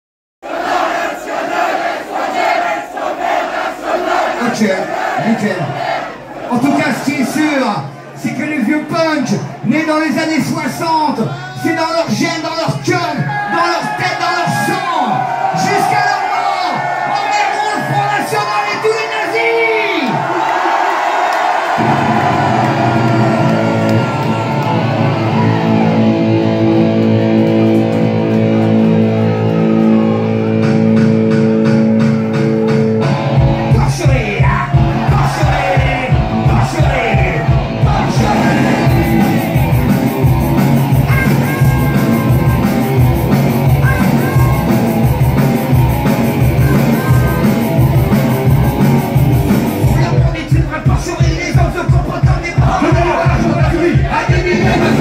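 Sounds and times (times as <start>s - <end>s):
concert crowd shouting and cheering: 0.5s - 55.0s
live punk band playing: 21.8s - 55.0s.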